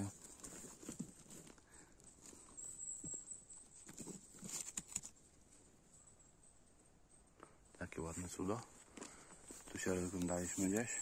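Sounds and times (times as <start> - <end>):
rustling of moss and pine litter: 0.0 - 5.2, 7.9 - 11.0
twigs crackling: 8.1 - 11.0.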